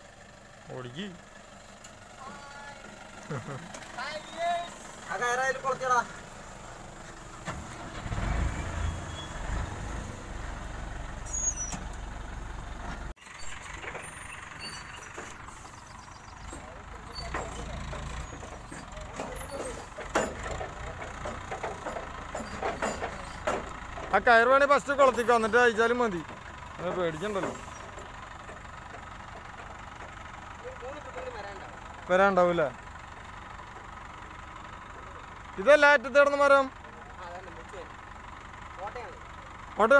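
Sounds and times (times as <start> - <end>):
diesel engine running: 0.0 - 39.9
men's voices: 2.2 - 6.4, 16.5 - 27.8.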